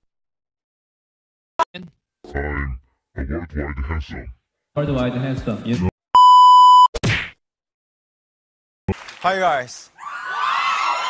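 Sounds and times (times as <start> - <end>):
test-pattern beep tone: 6.2 - 6.9.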